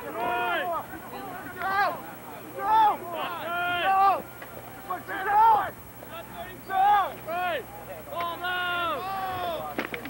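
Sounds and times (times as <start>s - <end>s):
men shouting: 0.0s - 0.8s, 2.6s - 4.2s, 4.8s - 5.7s.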